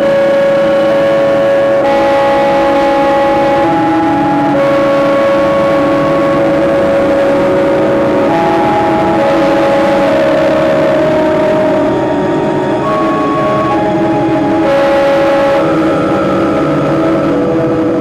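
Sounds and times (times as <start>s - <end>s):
electronic drone music: 0.0s - 18.0s.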